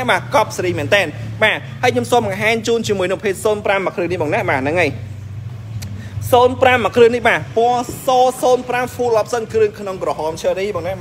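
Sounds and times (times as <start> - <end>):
man speaking: 0.0 - 5.2, 6.2 - 11.0
steady low hum: 0.0 - 11.0.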